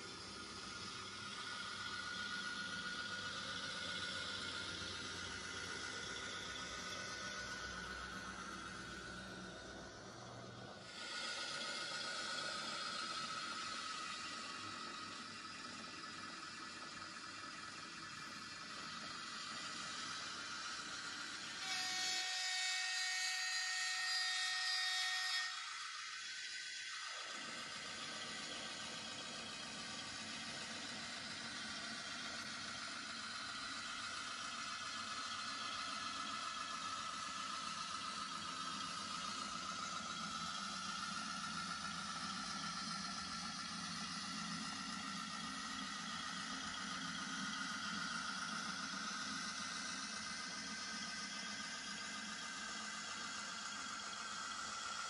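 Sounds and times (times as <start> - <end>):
model train motor whine: 0.0 - 55.0.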